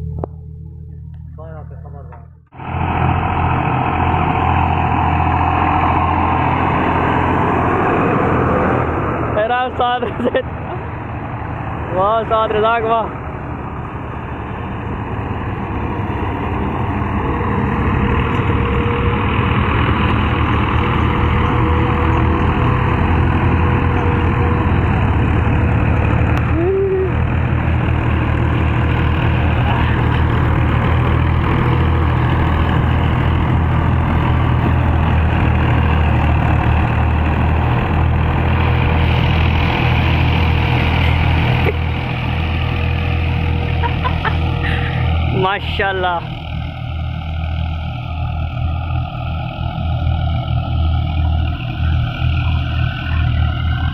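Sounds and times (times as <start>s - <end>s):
diesel tractor engines under load: 0.0s - 53.9s.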